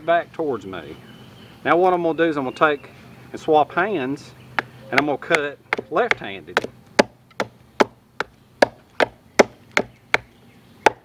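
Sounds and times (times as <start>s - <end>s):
machete chopping wooden stick: 4.6s - 10.3s.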